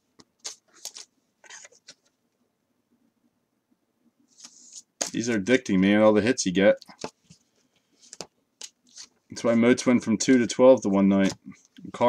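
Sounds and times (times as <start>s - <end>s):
faint card rustles: 0.4s - 2.2s, 4.3s - 5.9s, 6.8s - 12.0s.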